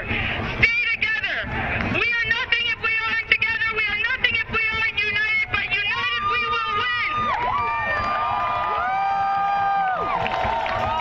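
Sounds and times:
crowd cheering: 5.2 - 11.0
long overlapping cries: 5.5 - 11.0.

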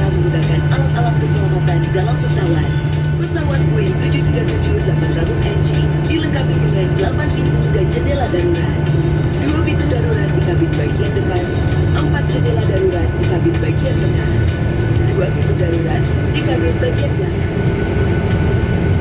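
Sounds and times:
person narrating: 0.0 - 17.4
safety video music: 0.0 - 18.9
airplane cabin drone: 0.0 - 19.0.

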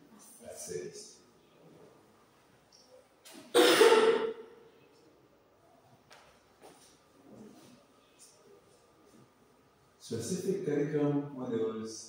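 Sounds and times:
loud cough: 3.5 - 4.4.

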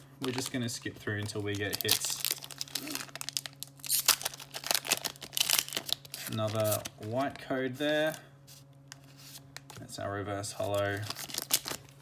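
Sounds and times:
foil wrapper crinkling: 0.2 - 8.2, 10.6 - 12.0.

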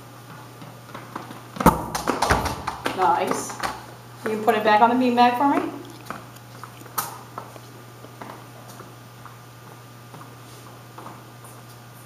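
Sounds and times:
child footsteps on tiled floor: 5.6 - 7.7.

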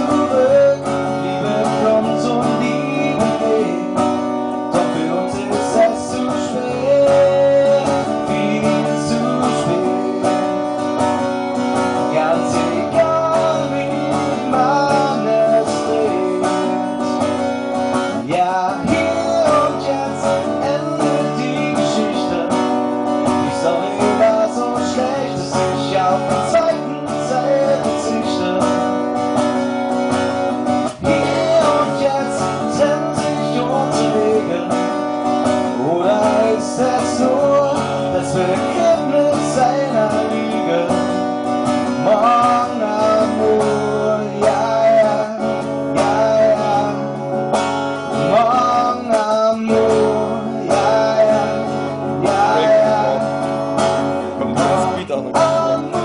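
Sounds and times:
acoustic guitar strumming: 0.0 - 56.0
man singing: 0.0 - 56.0.

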